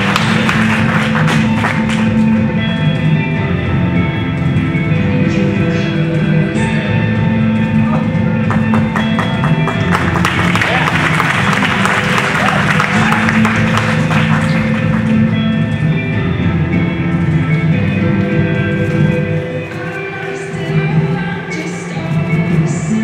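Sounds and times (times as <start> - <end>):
audience applause and cheering: 0.0 - 2.2, 8.4 - 15.3
song with guitar over sound system: 0.0 - 23.0.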